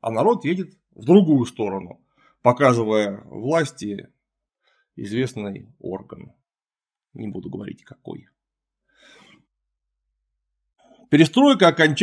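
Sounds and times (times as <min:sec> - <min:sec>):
man's short breath: 0:08.9 - 0:09.5.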